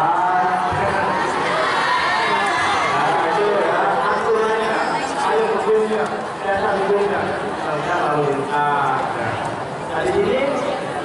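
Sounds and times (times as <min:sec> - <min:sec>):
man talking over loudspeaker: 0:00.0 - 0:10.8
crowd chatter: 0:00.0 - 0:11.0.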